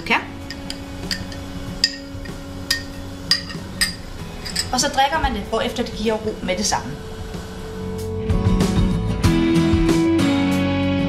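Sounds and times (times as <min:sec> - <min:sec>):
spoon clinking against glass: 0:00.0 - 0:04.8
faint steady hum: 0:00.0 - 0:08.2.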